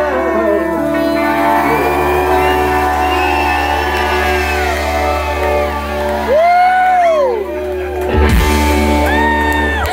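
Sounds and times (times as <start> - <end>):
country-rock band holding a chord: 0.0 - 9.4
audience whooping and shouting: 1.0 - 9.9.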